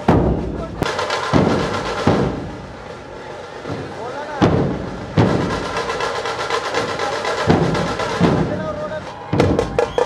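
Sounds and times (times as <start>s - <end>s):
sharp snare drum beats: 0.0s - 3.0s, 3.6s - 10.0s
barrel drum strokes: 0.0s - 10.0s.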